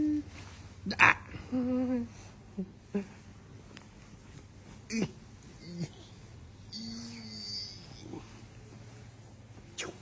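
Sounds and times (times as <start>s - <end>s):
person humming: 0.0s - 0.5s, 1.3s - 3.2s, 6.7s - 8.3s
person holding aah sound: 6.7s - 8.4s.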